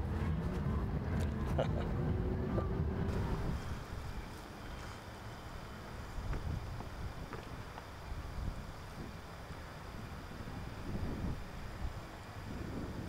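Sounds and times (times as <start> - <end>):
low steady hum: 0.0 - 13.0
wind on microphone: 9.9 - 13.0.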